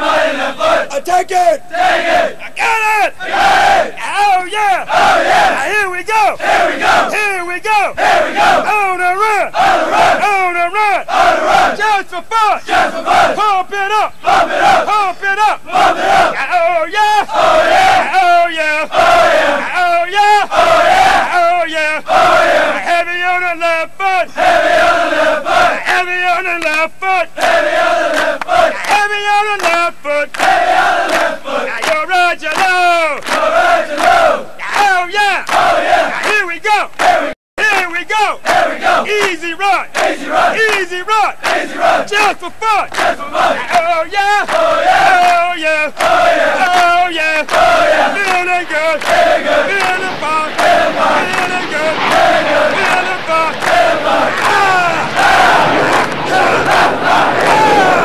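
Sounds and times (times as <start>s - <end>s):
men chanting in unison: 0.0s - 7.2s, 7.8s - 37.4s, 38.0s - 58.0s.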